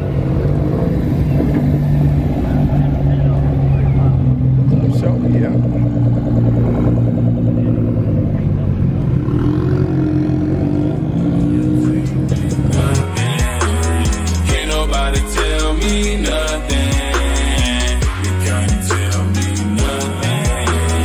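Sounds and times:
background voices: 0.0 - 21.0
car engines rolling slowly past: 0.0 - 21.0.

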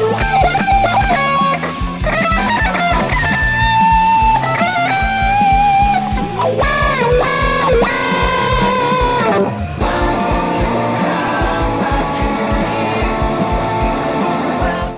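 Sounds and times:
electric guitar lead with bent notes: 0.0 - 14.9
rock backing track: 0.0 - 14.9.

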